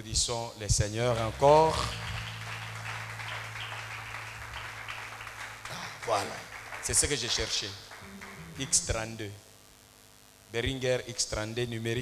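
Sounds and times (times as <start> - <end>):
faint low hum: 0.0 - 12.0
congregation clapping: 1.0 - 9.2.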